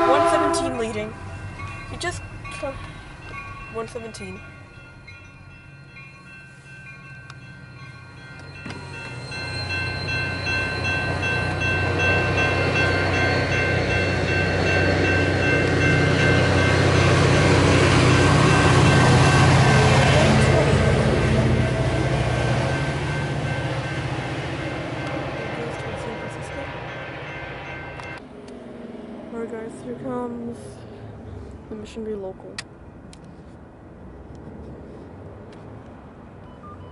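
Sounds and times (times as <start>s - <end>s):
railroad crossing bells: 0.0s - 28.4s, 36.3s - 36.9s
train passing: 0.0s - 36.9s.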